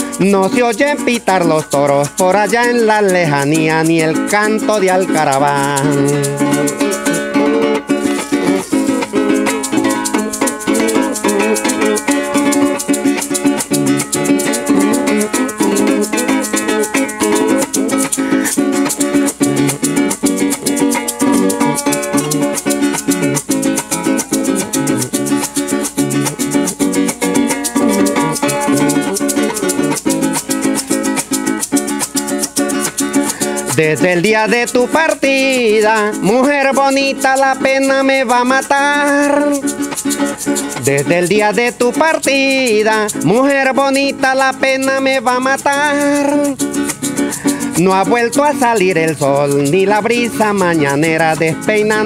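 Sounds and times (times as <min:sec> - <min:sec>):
maracas shaking: 0:00.0 - 0:52.0
strummed small guitar: 0:00.0 - 0:52.0.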